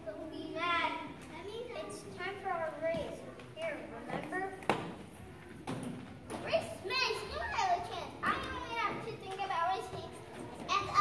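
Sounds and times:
young children speaking: 0:00.0 - 0:04.7, 0:06.3 - 0:11.0.

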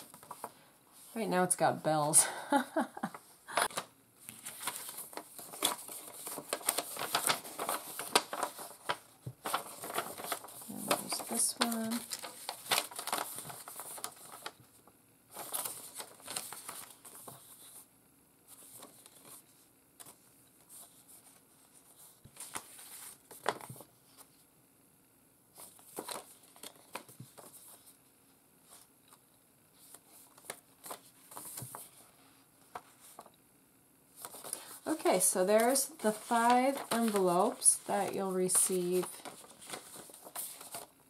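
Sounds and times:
paper rustling and crinkling: 0:00.0 - 0:01.2, 0:03.1 - 0:17.9, 0:18.5 - 0:24.4, 0:25.5 - 0:28.0, 0:28.6 - 0:33.3, 0:34.1 - 0:41.0.

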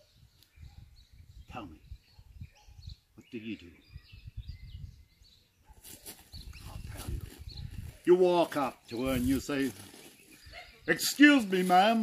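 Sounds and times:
man speaking: 0:10.9 - 0:12.0.

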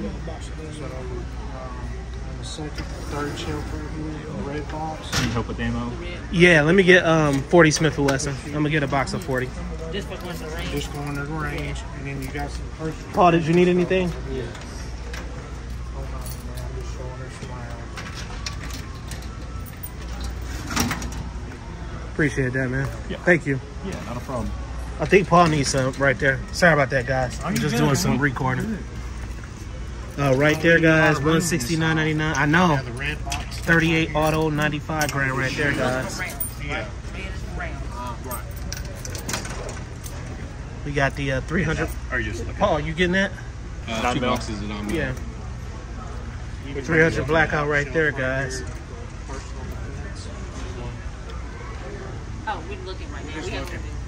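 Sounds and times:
faint talk of people: 0:00.0 - 0:54.0.

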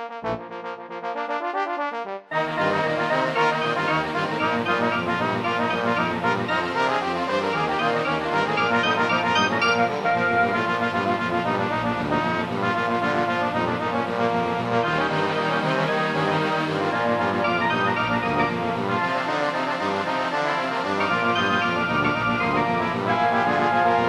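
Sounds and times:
brass ensemble playing: 0:00.0 - 0:24.0.

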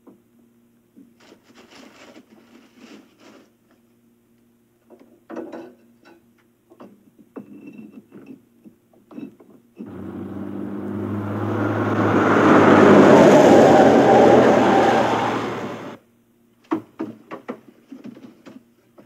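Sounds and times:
car passing by: 0:09.9 - 0:16.0.

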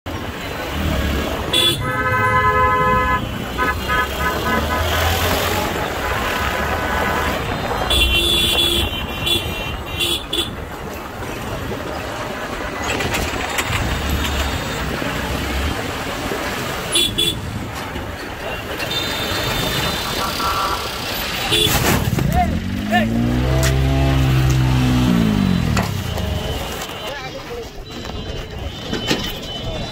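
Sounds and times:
vehicle horns honking: 0:01.5 - 0:10.6, 0:16.9 - 0:17.5, 0:18.5 - 0:22.0
motorcycle engine and wind rumble: 0:10.5 - 0:18.6.

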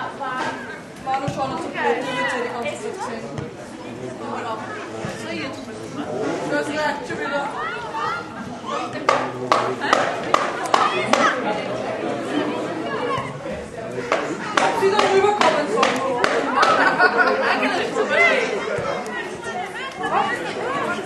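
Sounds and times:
spectators chatting: 0:00.0 - 0:21.0.

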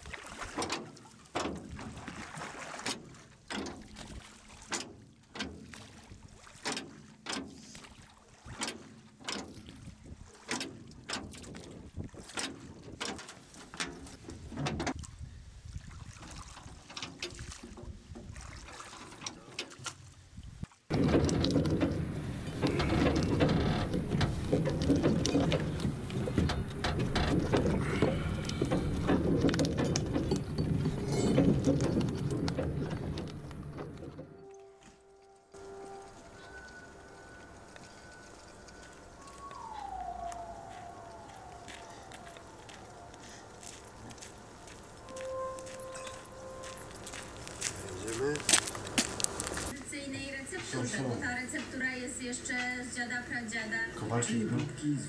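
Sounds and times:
wooden knocks and creaks: 0:10.5 - 0:15.0, 0:20.9 - 0:34.5
dense rush of sound: 0:39.2 - 0:44.6.

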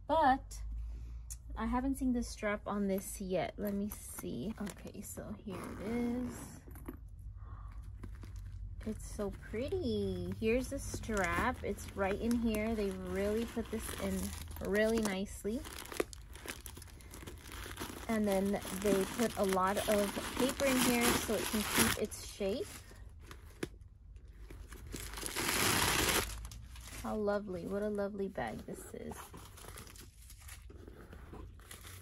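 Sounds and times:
paper crinkling and rustling: 0:07.9 - 0:27.9, 0:28.5 - 0:32.0.

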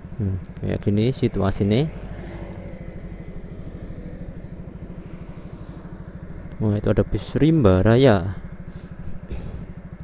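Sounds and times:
motorcycle engine idling: 0:00.0 - 0:10.0.

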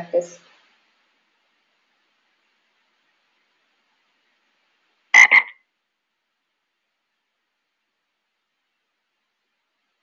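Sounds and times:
frog croaking: 0:05.1 - 0:05.7.

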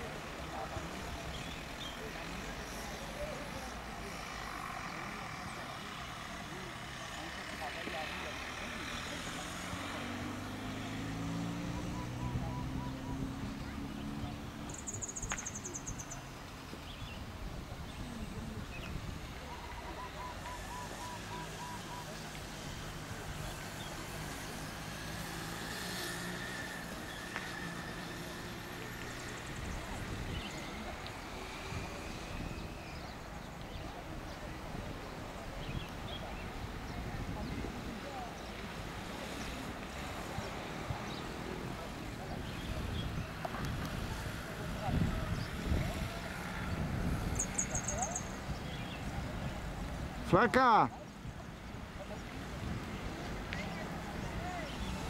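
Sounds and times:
outdoor noise: 0:00.0 - 0:55.0
vehicle engine hum rising in pitch: 0:03.2 - 0:15.3
car driving past: 0:04.2 - 0:14.8.

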